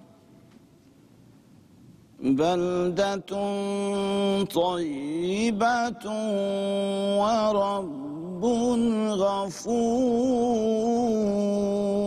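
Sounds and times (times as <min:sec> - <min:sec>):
man chanting recitation: 0:02.2 - 0:12.0.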